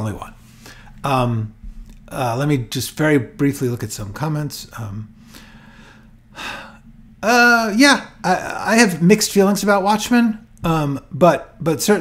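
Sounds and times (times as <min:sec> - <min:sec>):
faint room tone hiss: 0:00.0 - 0:12.0
man breathing in: 0:00.4 - 0:01.0, 0:05.2 - 0:06.9.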